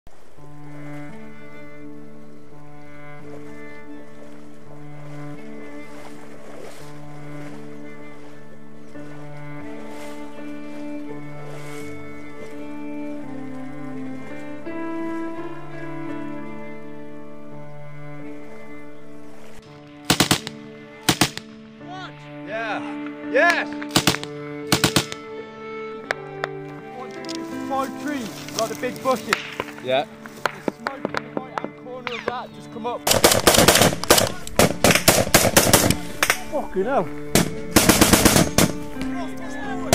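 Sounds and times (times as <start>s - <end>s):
low sustained string notes: 0.1s - 39.9s
music track: 0.3s - 39.9s
machine gun bursts: 20.1s - 20.5s, 23.9s - 25.2s, 33.1s - 36.0s, 37.4s - 38.8s.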